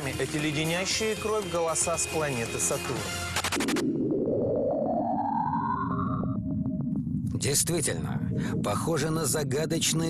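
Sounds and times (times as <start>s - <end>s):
eerie rising whistling tone: 3.9s - 7.0s
low rumbling hiss: 7.1s - 10.0s.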